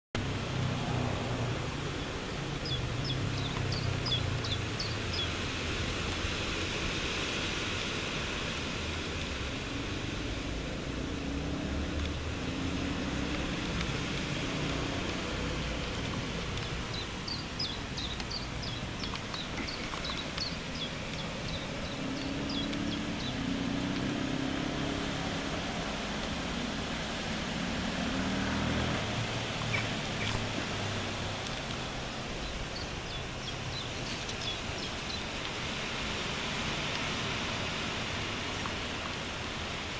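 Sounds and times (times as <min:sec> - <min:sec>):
distant road traffic rumble: 0:00.2 - 0:39.9
bird chirping: 0:02.0 - 0:05.4, 0:16.5 - 0:23.8, 0:29.6 - 0:30.5, 0:32.4 - 0:35.3.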